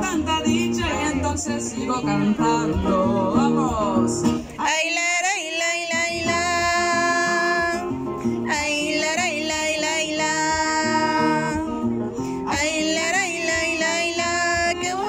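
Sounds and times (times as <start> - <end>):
acoustic guitar: 0.0 - 15.0
woman singing long held notes: 0.0 - 15.0.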